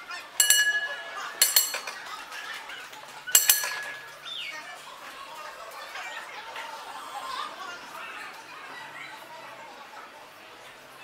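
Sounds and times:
streetcar bell clanging: 0:00.4 - 0:02.0, 0:03.4 - 0:04.2.

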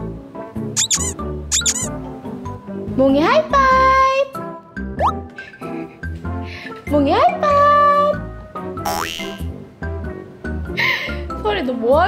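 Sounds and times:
high squeaks: 0:00.8 - 0:01.9
cheerful children's music: 0:00.8 - 0:09.5.

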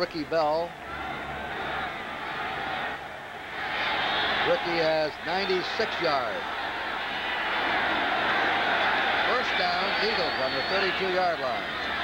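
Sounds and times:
stadium crowd murmur: 0:00.1 - 0:12.0.

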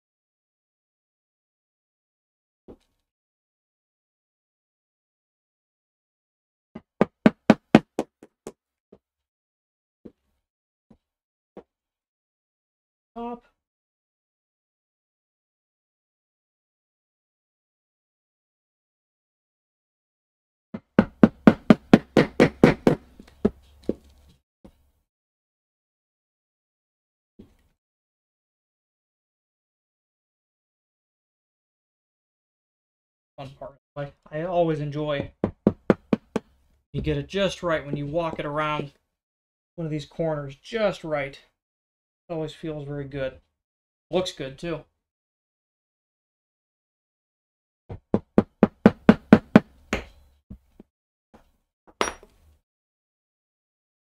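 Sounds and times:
mallet striking chisel: 0:20.8 - 0:23.0, 0:52.0 - 0:52.3.

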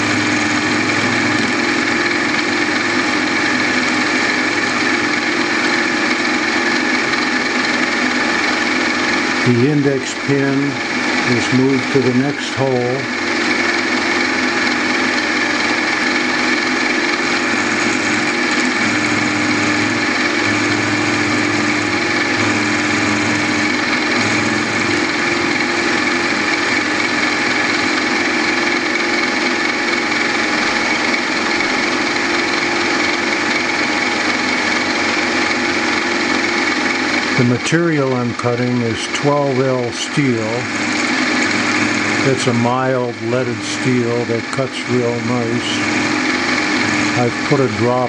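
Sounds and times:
machine spindle whining: 0:00.0 - 0:48.0.

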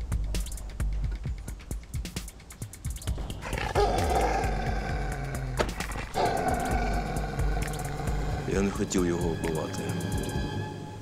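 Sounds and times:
background music with percussive ticks: 0:00.0 - 0:10.8
dog growling: 0:03.3 - 0:08.8.

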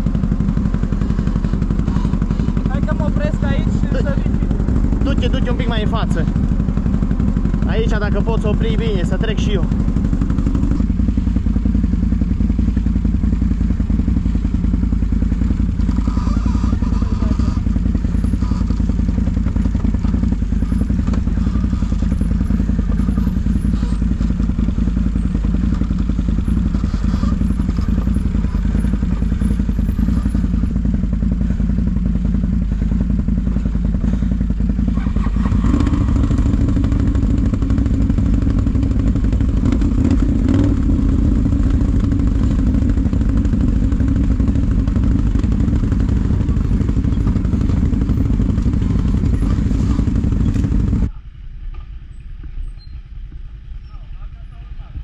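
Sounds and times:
atv engine running: 0:00.0 - 0:55.0.

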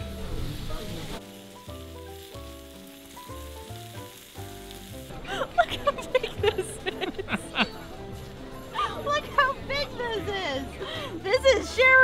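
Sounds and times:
meat sizzling on a griddle: 0:00.0 - 0:09.0
soft background music: 0:00.0 - 0:12.0.

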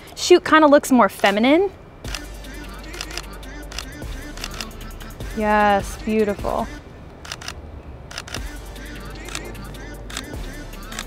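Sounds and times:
camera shutter clicks: 0:02.1 - 0:02.3, 0:02.9 - 0:04.7, 0:07.2 - 0:08.5, 0:09.2 - 0:09.5, 0:10.1 - 0:11.0.

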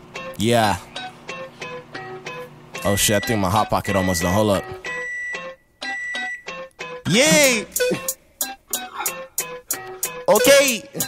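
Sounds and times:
electric keyboard chords: 0:00.0 - 0:11.0.

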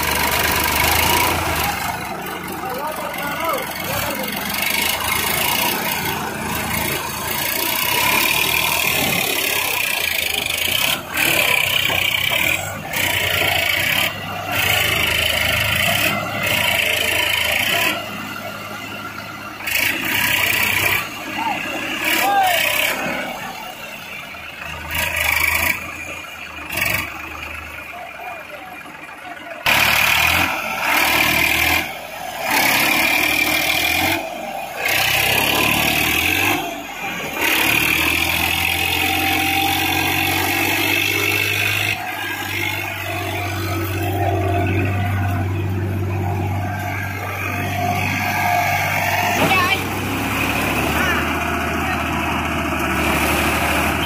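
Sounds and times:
tractor diesel engines under load: 0:00.0 - 0:54.0.

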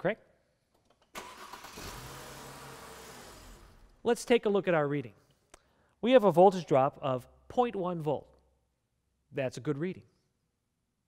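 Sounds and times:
car starter motor cranking: 0:01.1 - 0:04.0.

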